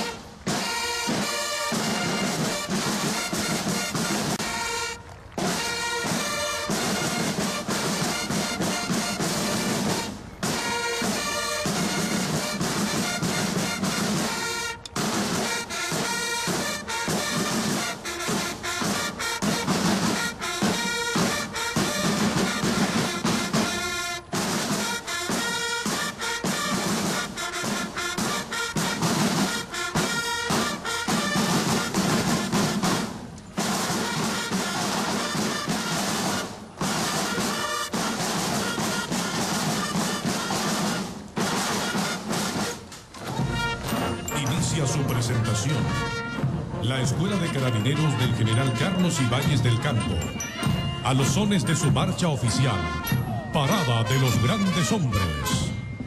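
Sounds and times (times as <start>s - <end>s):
brass playing a march: 0.0s - 56.0s
snare drums: 0.0s - 56.0s.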